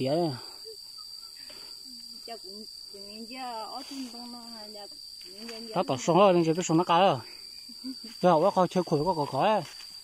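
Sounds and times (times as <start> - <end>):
insects droning high-pitched: 0.0 - 10.0.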